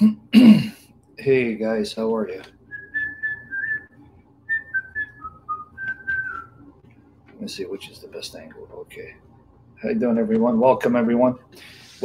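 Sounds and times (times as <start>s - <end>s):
man whistling a tune: 2.7s - 6.6s.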